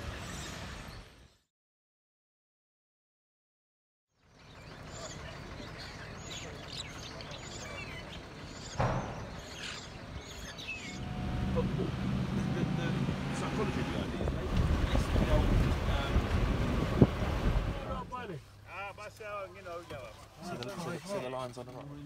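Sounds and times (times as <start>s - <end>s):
starlings chirping: 4.2s - 11.6s
vehicle engine humming: 4.2s - 20.1s
sharp knock: 8.8s - 9.7s
wind on microphone: 13.8s - 18.0s.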